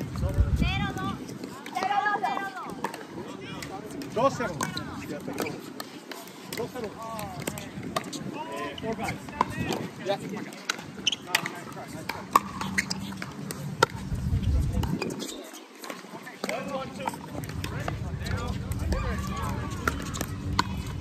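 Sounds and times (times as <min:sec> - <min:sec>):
players' voices: 0:00.0 - 0:21.0
paddles hitting plastic ball: 0:01.4 - 0:08.2, 0:08.9 - 0:21.0.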